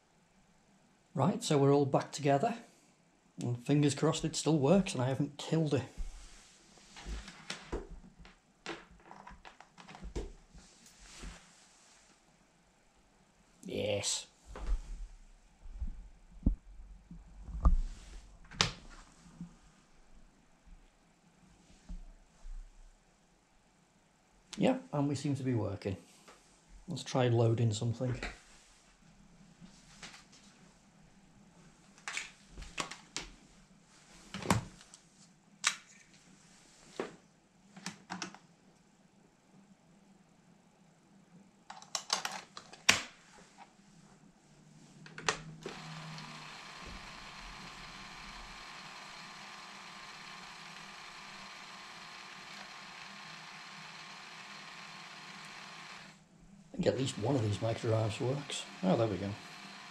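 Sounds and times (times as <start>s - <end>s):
tape drive whirring: 45.3s - 59.9s.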